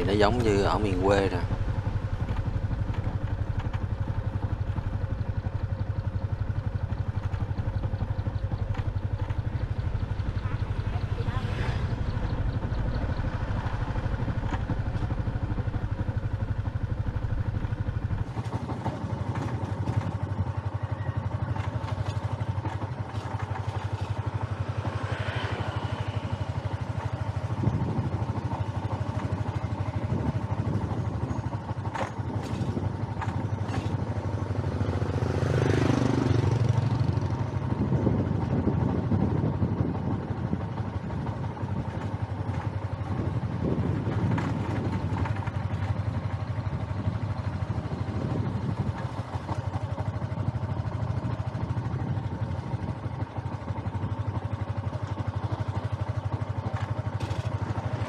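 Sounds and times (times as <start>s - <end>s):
motorbike engine running: 0.0s - 58.0s.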